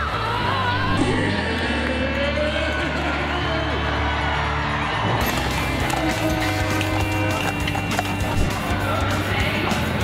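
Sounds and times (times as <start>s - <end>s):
background music with held notes: 3.2s - 10.0s.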